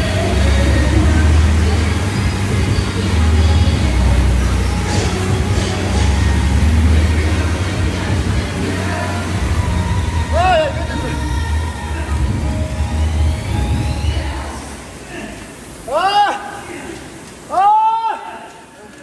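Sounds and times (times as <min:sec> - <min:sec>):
background music: 0:00.0 - 0:15.0
exercise bike fan whirring: 0:00.0 - 0:19.0.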